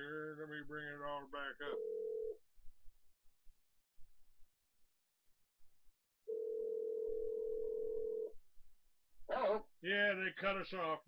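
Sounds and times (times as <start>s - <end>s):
electronic telephone line tone: 6.3s - 8.3s.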